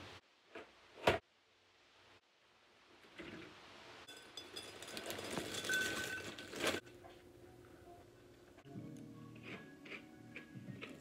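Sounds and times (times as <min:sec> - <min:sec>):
faint background music: 0:06.6 - 0:11.0.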